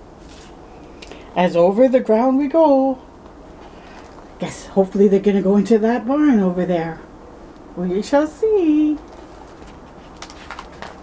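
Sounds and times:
book page rustling: 9.0 - 11.0.

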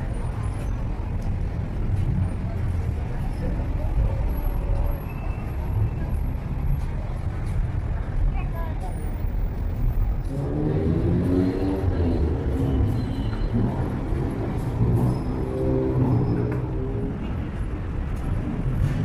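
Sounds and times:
indistinct crowd chatter: 0.0 - 18.8.

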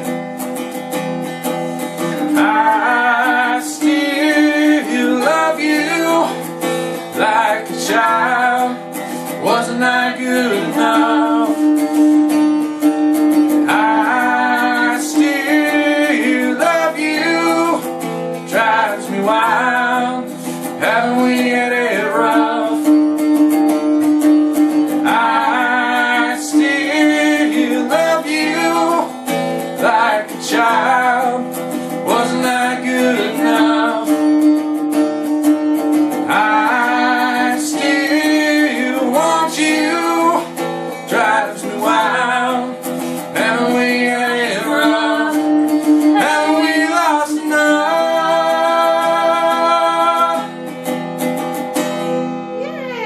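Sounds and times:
plucked string instrument: 0.0 - 53.0
man and woman singing: 2.0 - 11.9, 13.5 - 23.1, 24.9 - 34.6, 36.1 - 50.6.

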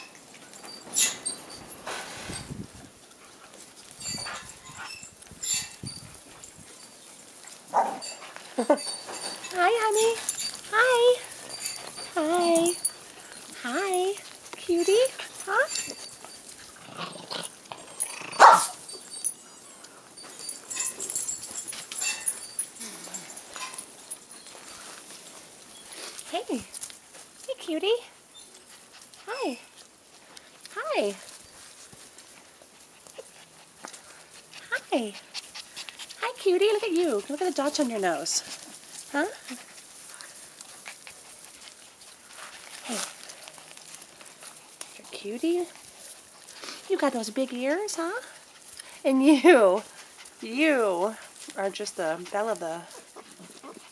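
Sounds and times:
handling rustles and bumps: 0.0 - 27.8
puppies whimpering and yipping: 14.8 - 24.7, 52.3 - 53.9
puppy sharp yelp: 18.3 - 18.8.

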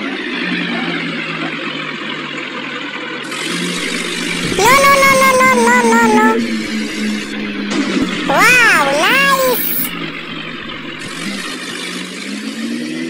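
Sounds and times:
loud high rising call: 3.8 - 11.5.

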